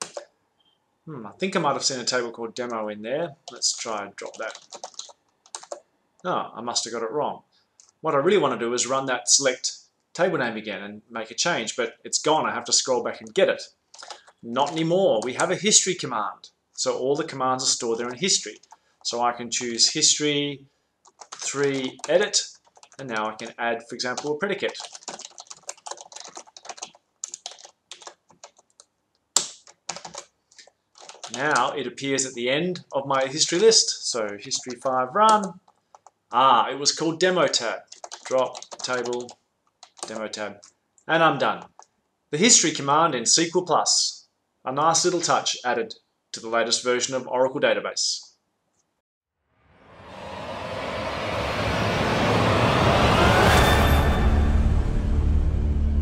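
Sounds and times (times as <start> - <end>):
computer keyboard typing: 0.0 - 0.2, 3.4 - 5.8, 13.9 - 15.6, 17.9 - 18.8, 21.0 - 31.8, 32.8 - 36.2, 37.5 - 40.8, 41.5 - 41.9
low drone: 49.6 - 56.0
thin tone gliding upward: 49.6 - 56.0
whooshing riser: 49.6 - 56.0.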